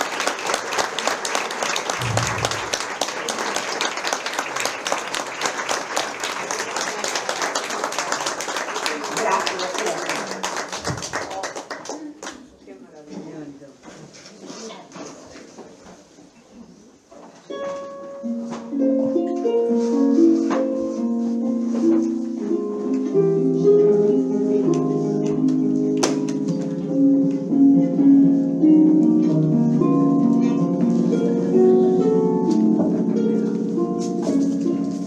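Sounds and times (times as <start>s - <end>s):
audience applause: 0.0s - 12.4s
plucked string instrument music: 17.5s - 35.0s.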